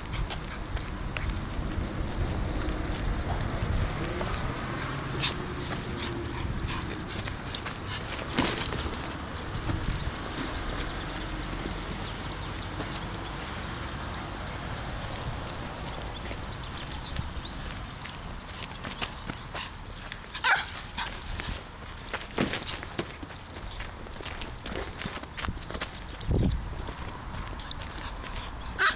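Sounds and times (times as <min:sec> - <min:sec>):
dog pawing a ball on dirt: 0:05.2 - 0:13.0, 0:20.4 - 0:25.9
small dog barking: 0:20.4 - 0:21.1.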